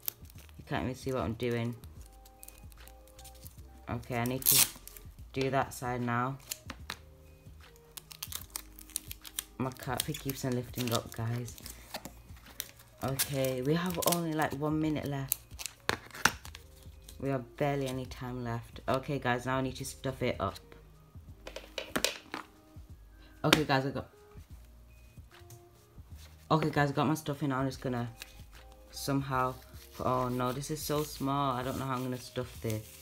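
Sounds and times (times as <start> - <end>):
paper and sticky tape handled: 0.0 - 0.6, 1.6 - 3.6, 4.2 - 5.0, 7.7 - 17.2, 29.4 - 33.0
faint background music: 0.0 - 33.0.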